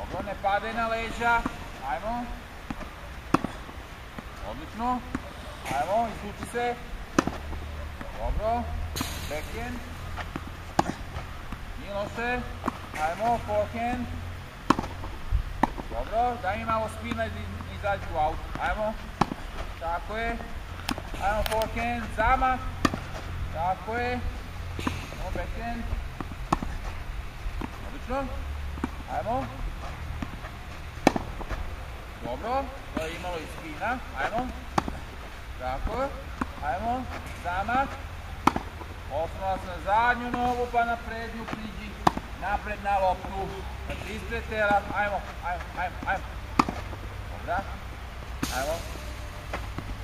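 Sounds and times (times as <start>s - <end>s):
tennis ball impacts: 0.0s - 50.0s.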